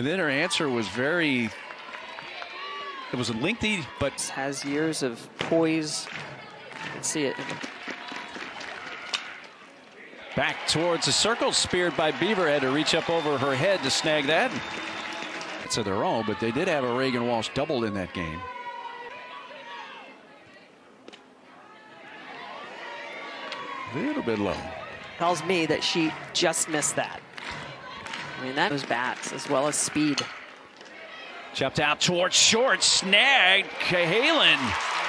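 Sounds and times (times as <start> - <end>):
stadium crowd noise: 0.0 - 35.0.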